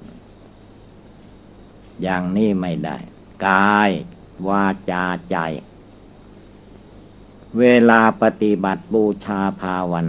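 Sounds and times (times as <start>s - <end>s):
faint high-pitched hum: 0.0s - 10.0s
man giving a sermon: 2.0s - 5.6s, 7.6s - 10.0s.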